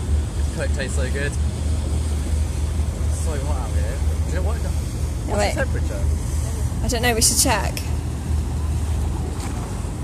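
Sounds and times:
boat engine rumble: 0:00.0 - 0:10.0
water splashing against stone wall: 0:03.8 - 0:10.0.

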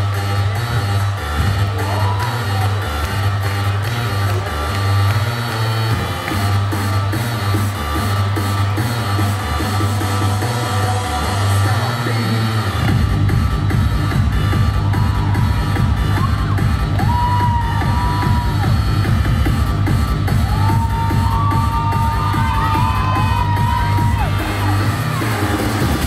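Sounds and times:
electronic dance music: 0:00.0 - 0:26.0.

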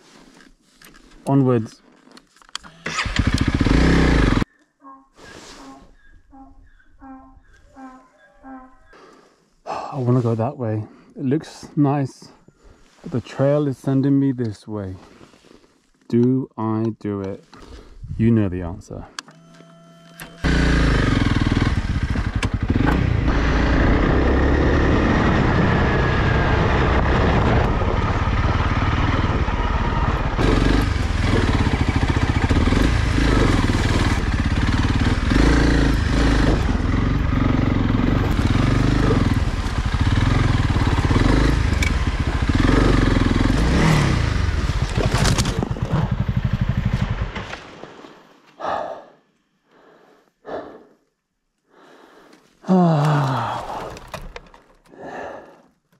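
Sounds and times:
motorcycle engine revving: 0:02.6 - 0:04.5, 0:20.4 - 0:47.6
motorcycle crash: 0:44.6 - 0:48.0
knocks and rattles: 0:53.8 - 0:54.9.

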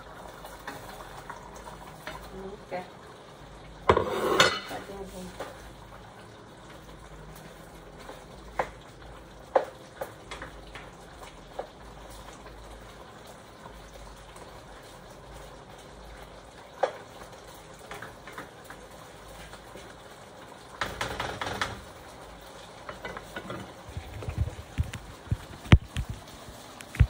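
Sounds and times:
food frying in a pan: 0:00.0 - 0:27.0.

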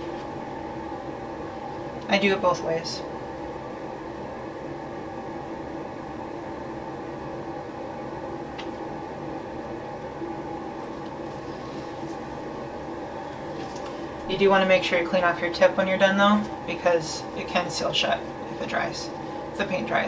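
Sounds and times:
room hum and hiss: 0:00.0 - 0:20.0.

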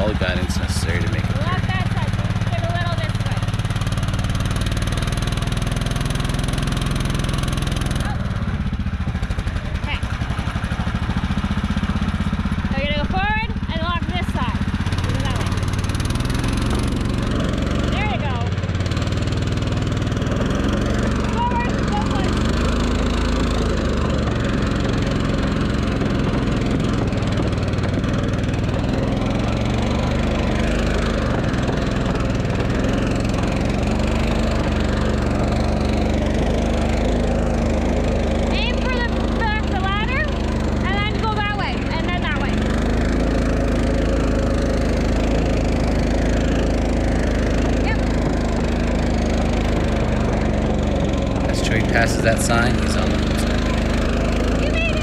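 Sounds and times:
vehicle engine running under load: 0:00.0 - 0:55.0.

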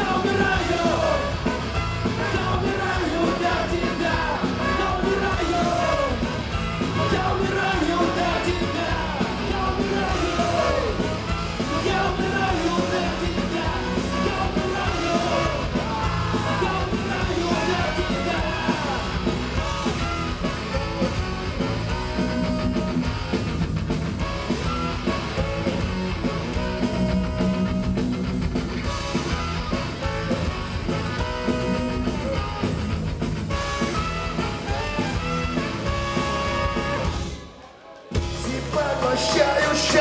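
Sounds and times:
person singing lead vocal: 0:00.0 - 0:23.0, 0:38.2 - 0:40.0
bass guitar: 0:00.0 - 0:37.4, 0:38.2 - 0:40.0
saxophone: 0:00.0 - 0:38.3
drums: 0:00.0 - 0:40.0
trumpet: 0:00.0 - 0:40.0.

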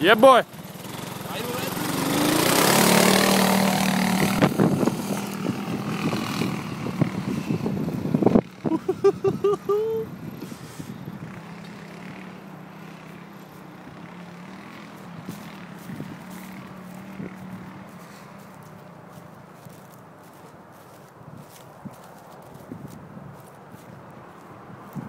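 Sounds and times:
voices: 0:00.0 - 0:00.5, 0:01.1 - 0:02.3, 0:08.7 - 0:10.1
buggy engine pulling away: 0:00.0 - 0:20.4.

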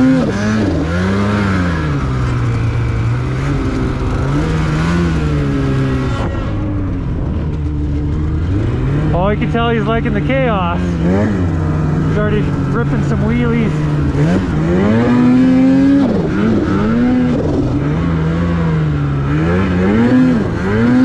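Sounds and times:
snowmobile engine revving: 0:00.0 - 0:21.0
person speaking: 0:09.1 - 0:11.0, 0:12.0 - 0:14.0.

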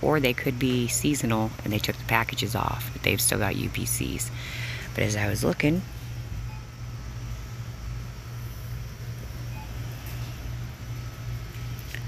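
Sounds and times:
store background hum: 0:00.0 - 0:12.0.

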